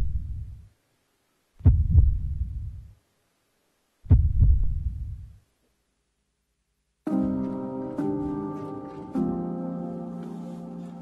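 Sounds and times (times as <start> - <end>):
deep heartbeat-like thuds: 1.6 - 2.9, 4.0 - 5.4.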